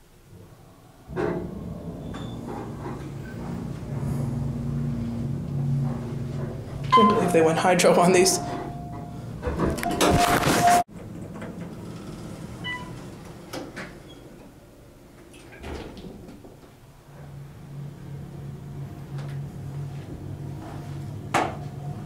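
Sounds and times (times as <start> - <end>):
elevator low hum: 0.0 - 22.0
elevator doors sliding shut: 0.9 - 22.0
short beep: 6.9 - 7.3.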